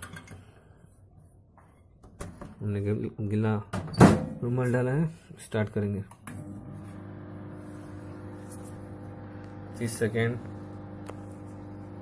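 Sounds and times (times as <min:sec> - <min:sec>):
microwave oven humming: 0:06.3 - 0:12.0.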